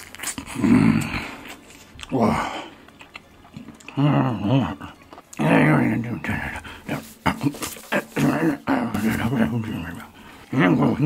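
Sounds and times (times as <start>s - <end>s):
man's wordless vocal sounds: 3.8s - 11.0s.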